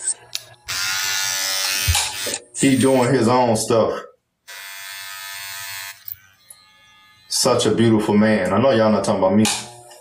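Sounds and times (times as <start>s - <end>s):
hair trimmer buzzing: 0.6s - 3.2s, 4.4s - 8.2s, 9.1s - 10.0s.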